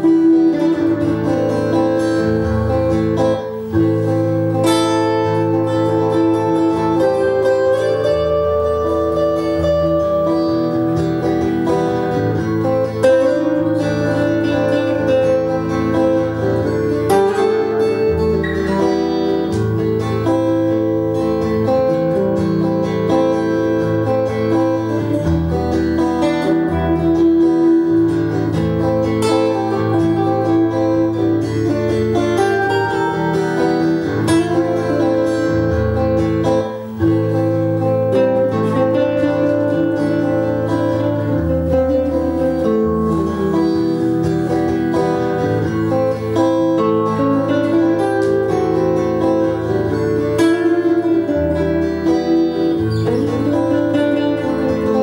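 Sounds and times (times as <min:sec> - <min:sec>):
acoustic-electric guitar lead: 0:00.0 - 0:55.0
looped guitar rhythm: 0:00.0 - 0:55.0.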